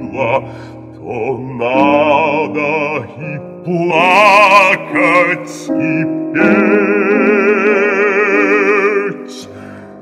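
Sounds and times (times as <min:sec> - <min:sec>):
operatic bass voice singing: 0:00.0 - 0:09.5
piano accompaniment: 0:00.0 - 0:10.0.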